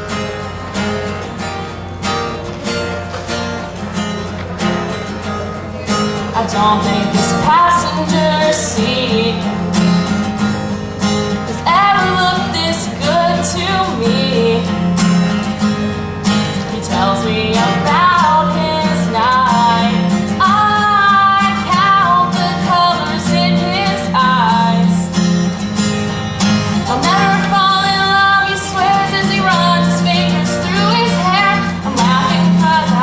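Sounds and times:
acoustic guitar strumming: 0.0 - 33.0
woman singing country song: 6.0 - 10.4, 11.2 - 33.0.

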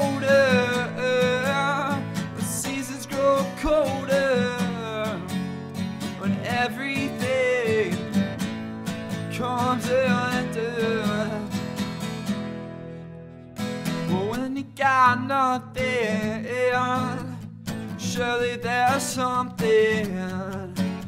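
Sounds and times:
man singing: 0.0 - 8.4, 9.1 - 11.8, 14.0 - 21.0
acoustic guitar strumming: 0.0 - 21.0.

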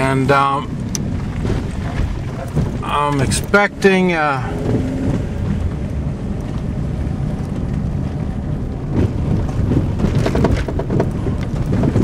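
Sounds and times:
car engine and road rumble: 0.0 - 12.0
wheels knocking in potholes: 0.0 - 12.0.

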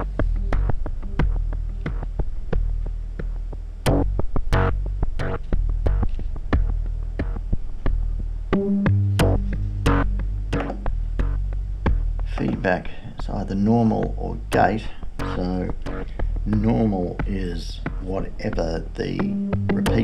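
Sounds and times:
delay repeats: 0.0 - 2.1, 8.5 - 11.4, 19.1 - 20.0
bass synthesizer sequence: 0.0 - 12.5, 13.3 - 20.0.

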